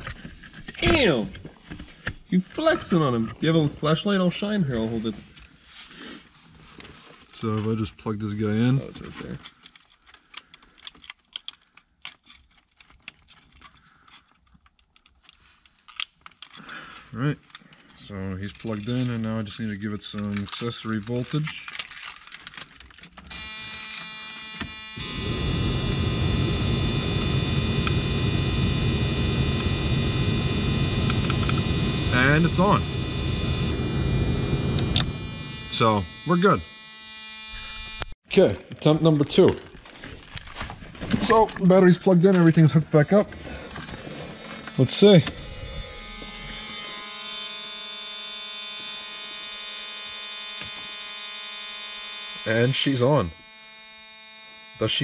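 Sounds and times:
steady electrical hum: 23.3 - 38.2.

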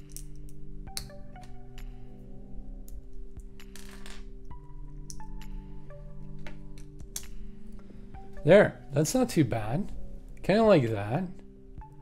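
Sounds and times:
background music of held notes: 0.0 - 12.0.

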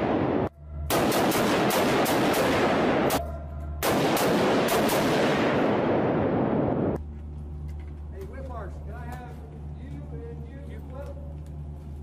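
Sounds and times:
rapid echoing rifle shots: 0.0 - 7.0.

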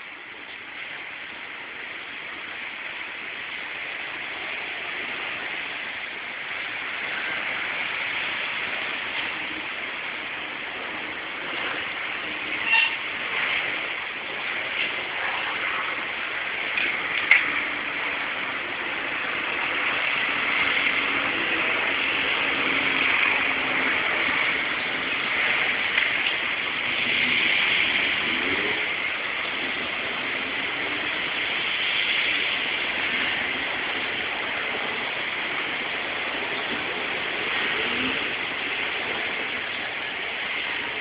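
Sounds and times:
traffic noise from passing cars: 0.0 - 41.0.

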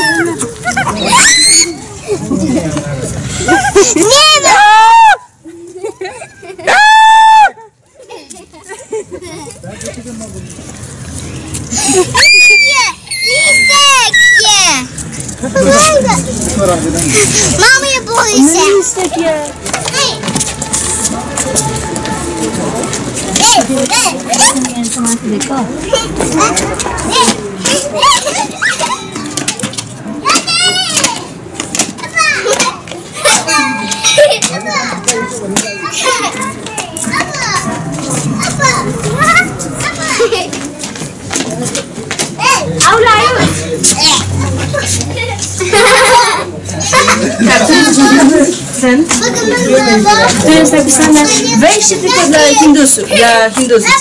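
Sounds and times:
children squealing and laughing: 0.0 - 2.4, 3.3 - 9.5, 11.7 - 16.4, 25.9 - 31.3, 32.0 - 40.8, 42.4 - 48.6
child screaming: 12.2 - 14.6.

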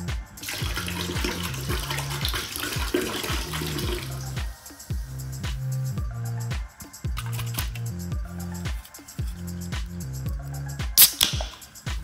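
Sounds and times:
background music with beat: 0.0 - 12.0
liquid pouring into plastic bucket: 0.4 - 4.2.

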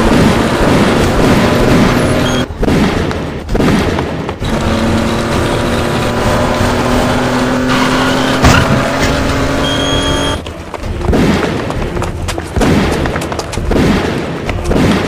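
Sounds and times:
car engine humming: 0.0 - 13.6.

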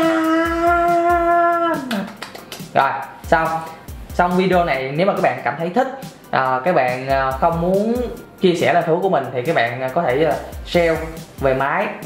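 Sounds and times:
man singing long aah: 0.0 - 2.0
background music: 0.0 - 12.0.

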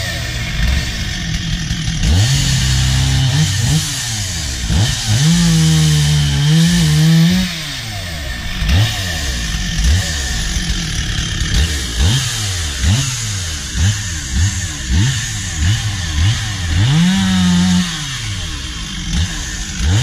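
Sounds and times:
chainsaw idling with throttle blips: 0.0 - 20.0.

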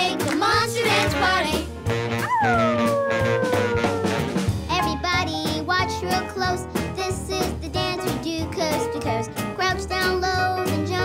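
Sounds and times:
children's dance music: 0.0 - 11.0
child's voice howling: 2.2 - 4.5.

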